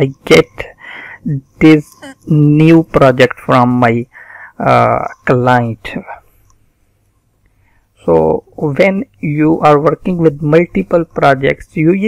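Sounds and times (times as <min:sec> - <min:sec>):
man speaking: 0:00.0 - 0:06.3, 0:08.0 - 0:12.0.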